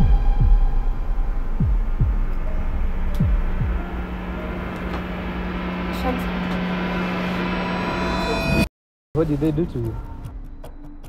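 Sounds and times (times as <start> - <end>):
deep heartbeat thuds: 0.0 - 4.1
steady low hum: 0.0 - 8.7.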